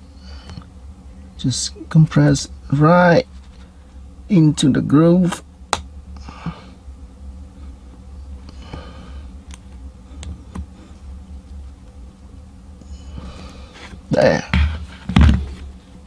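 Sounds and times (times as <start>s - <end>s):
low steady hum: 0.0s - 16.0s.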